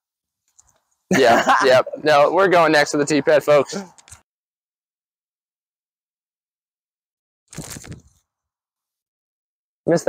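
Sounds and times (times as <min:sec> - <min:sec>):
crunching rustling throw: 0:07.5 - 0:08.2.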